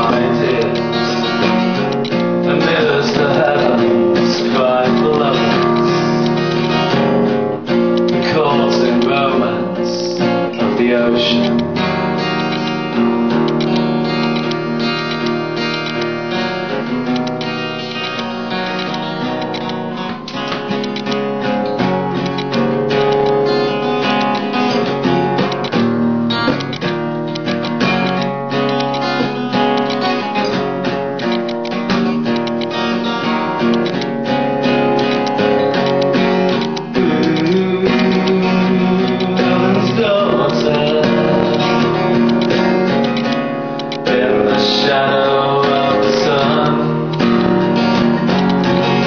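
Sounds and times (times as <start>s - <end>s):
acoustic guitar strumming: 0.0s - 49.0s.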